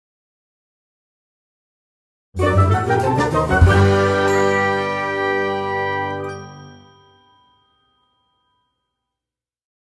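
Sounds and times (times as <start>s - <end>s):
chime jingle: 3.6s - 9.2s.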